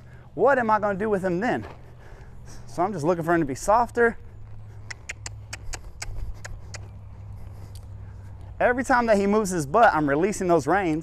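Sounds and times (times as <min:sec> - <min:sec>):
steady low rumble: 0:00.0 - 0:10.7.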